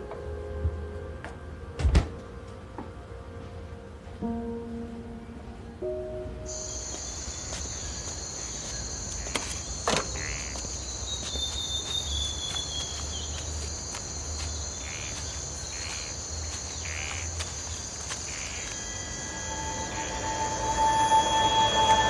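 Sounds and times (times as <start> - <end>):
insects chirring: 6.4 - 22.0
held tone: 18.6 - 22.0.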